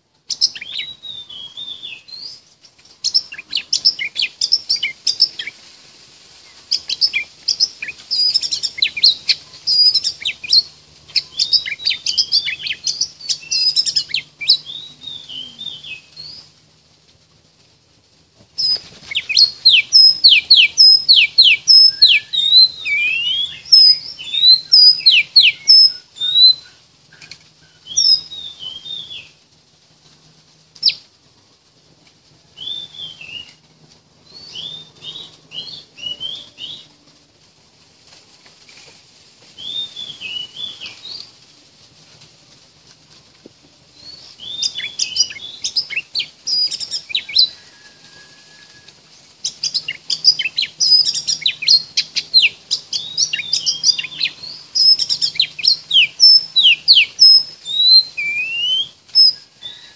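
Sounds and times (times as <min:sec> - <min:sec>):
bird song with clear whistles: 0:00.3 - 0:02.4, 0:03.0 - 0:05.6, 0:06.7 - 0:16.4, 0:18.6 - 0:29.4, 0:32.6 - 0:33.6, 0:34.3 - 0:36.9, 0:39.6 - 0:41.3, 0:44.0 - 0:59.9.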